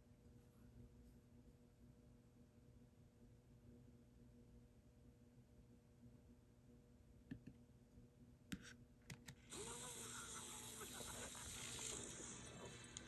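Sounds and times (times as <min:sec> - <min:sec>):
game audio through laptop speaker: 0:08.6 - 0:13.0.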